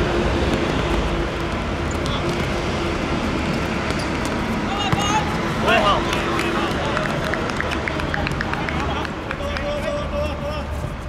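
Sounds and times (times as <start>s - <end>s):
footballers shouting: 4.6s - 10.7s.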